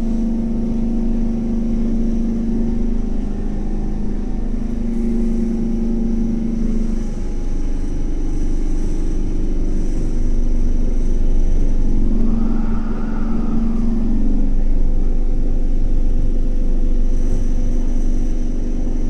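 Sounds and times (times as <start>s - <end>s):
high tone: 12.0s - 14.7s.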